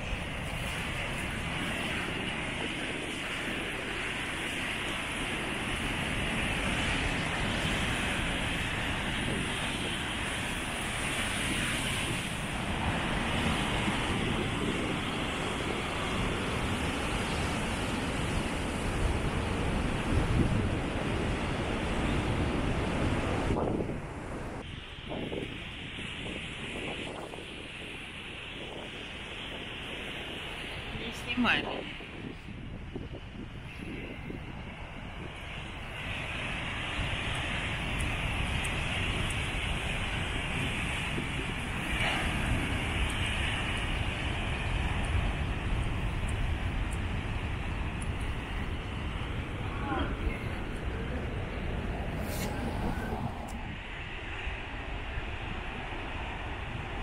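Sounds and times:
ocean surf breaking on rocks: 0.0s - 57.0s
wind on microphone: 0.0s - 57.0s.

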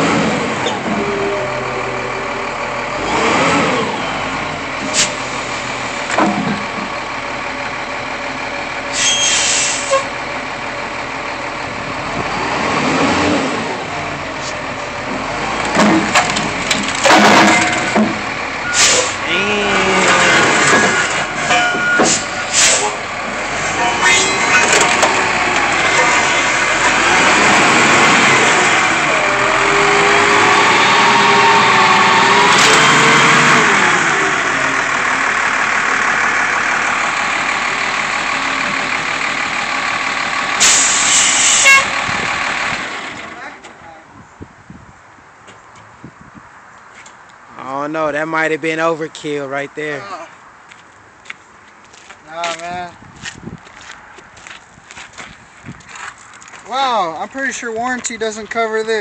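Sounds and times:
forklift engine running: 0.0s - 43.7s.

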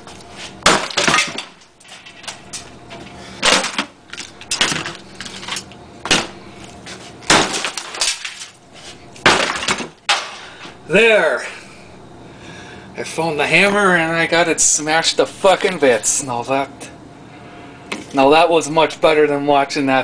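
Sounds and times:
hammer smashing plastic parts: 0.6s - 1.6s, 3.4s - 6.3s, 7.2s - 8.6s, 9.2s - 10.4s
rattle of breaking parts: 0.7s - 2.4s, 7.3s - 8.6s.

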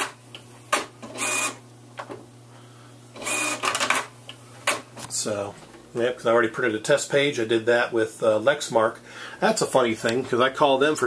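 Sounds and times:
inkjet printer mechanism running: 0.7s - 1.6s, 3.2s - 4.8s.

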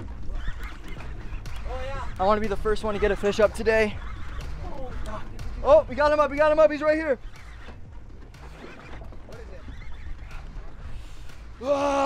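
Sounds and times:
wind and sea rumble: 0.0s - 11.8s
drawn-out shout: 11.6s - 12.0s.

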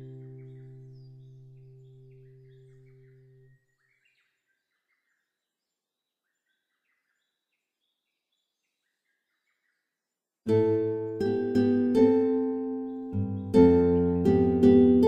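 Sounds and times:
soft instrumental chord: 0.0s - 3.0s, 10.5s - 15.0s
faint birdsong chirps: 0.0s - 15.0s.

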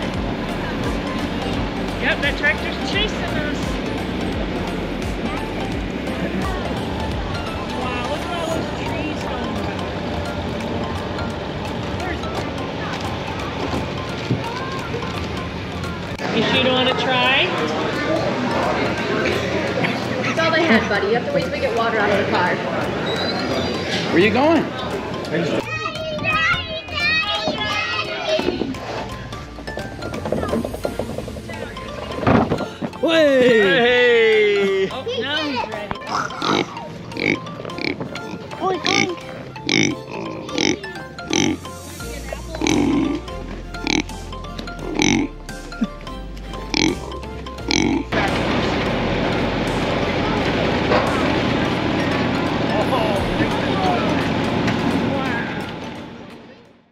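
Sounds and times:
faint indistinct voices: 0.0s - 33.1s, 33.9s - 45.8s, 46.4s - 56.9s
outdoor background noise: 0.0s - 56.9s
children calling and shrieking: 5.1s - 9.1s, 24.8s - 29.5s.

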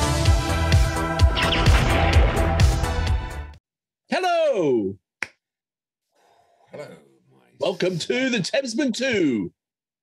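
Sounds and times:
finger snap: 5.2s - 5.4s.

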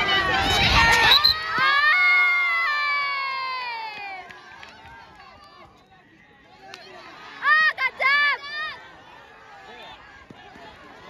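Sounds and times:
crowd yelling and cheering: 0.0s - 11.0s.

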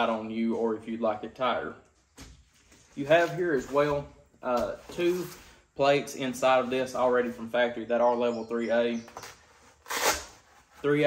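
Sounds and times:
nylon fabric rustling: 9.1s - 11.0s.

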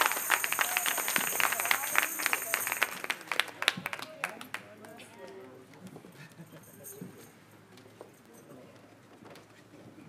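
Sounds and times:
congregation clapping: 0.0s - 5.5s.

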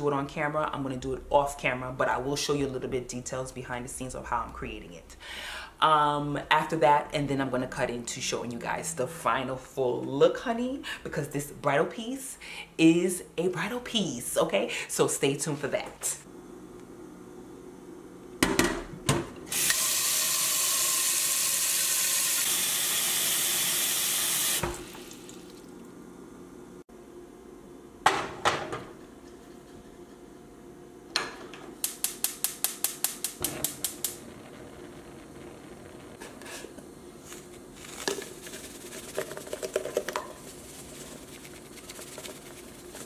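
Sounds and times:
gas burner low steady sound: 16.2s - 25.2s, 25.8s - 38.4s.

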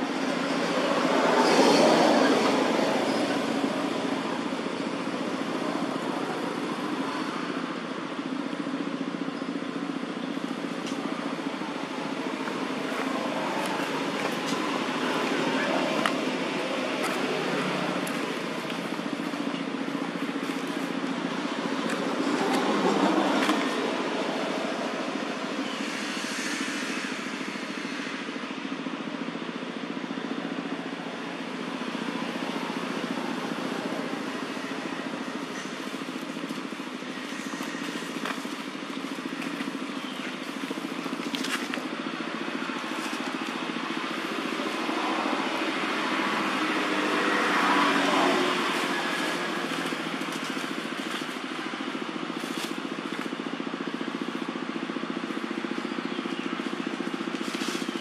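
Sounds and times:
vehicle engine running: 0.0s - 58.0s.

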